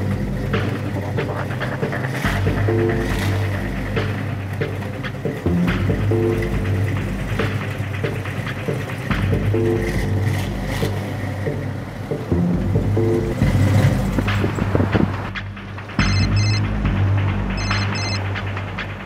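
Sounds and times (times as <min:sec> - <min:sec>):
music with deep bass and drums: 0:00.0 - 0:19.0.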